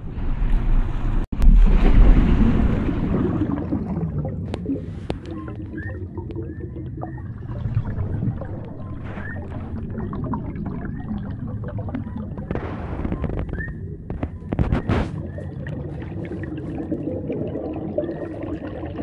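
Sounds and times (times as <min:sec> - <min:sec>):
low underwater rumble: 0:00.0 - 0:19.0
water gurgling: 0:01.4 - 0:19.0.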